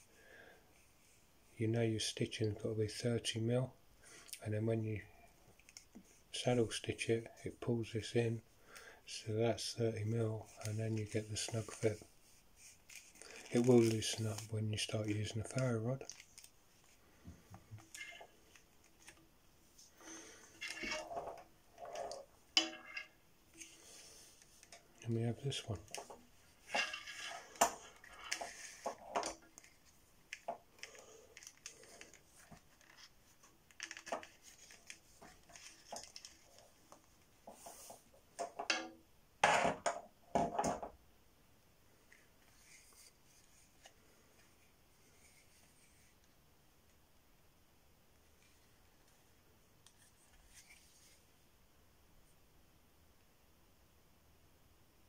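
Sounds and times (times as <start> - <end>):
objects handled on marble: 16.1 - 19.2, 20.0 - 25.0, 25.8 - 40.9.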